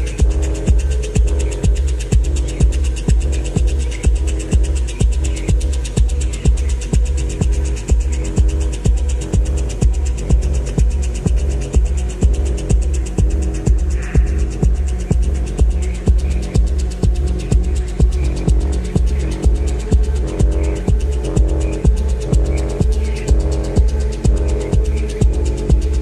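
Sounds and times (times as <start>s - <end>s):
fast hi-hat ticks: 0.0s - 26.0s
techno kick drum: 0.0s - 26.0s
throbbing bass line: 0.0s - 26.0s.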